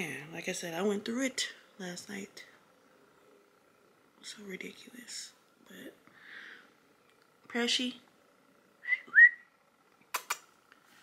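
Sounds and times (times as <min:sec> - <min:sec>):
woman whistling: 0:08.8 - 0:09.5.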